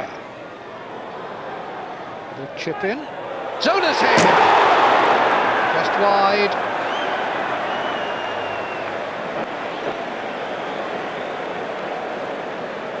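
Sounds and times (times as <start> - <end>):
stadium crowd din: 0.0 - 13.0.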